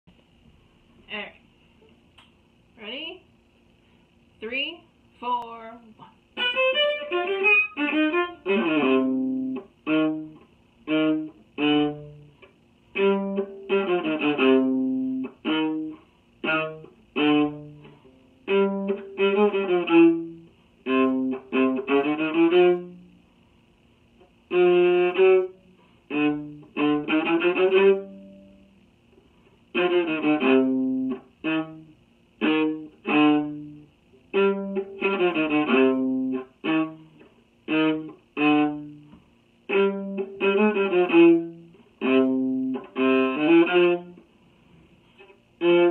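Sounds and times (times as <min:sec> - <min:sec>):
bowed viola playing: 0:06.4 - 0:12.3, 0:13.0 - 0:23.1, 0:24.5 - 0:28.6, 0:29.7 - 0:37.1, 0:37.7 - 0:39.0, 0:39.7 - 0:44.2, 0:45.6 - 0:45.9.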